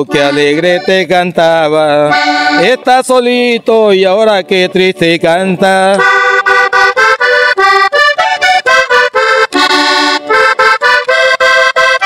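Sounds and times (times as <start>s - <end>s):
button accordion melody: 0.0s - 12.0s.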